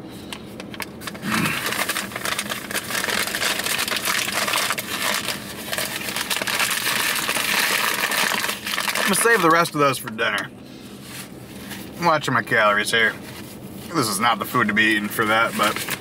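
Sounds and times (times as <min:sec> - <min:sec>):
paper bag crinkling: 0:00.8 - 0:10.0, 0:13.3 - 0:16.0.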